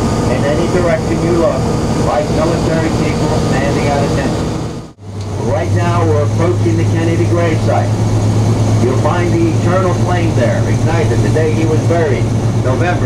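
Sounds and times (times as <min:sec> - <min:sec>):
vehicle engine humming: 0:00.0 - 0:13.0
man narrating: 0:00.3 - 0:04.4, 0:05.4 - 0:08.0, 0:08.8 - 0:13.0.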